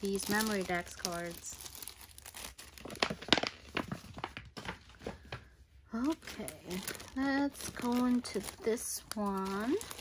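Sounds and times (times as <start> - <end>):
plastic packaging crinkling: 0.0 - 5.2, 5.9 - 10.0.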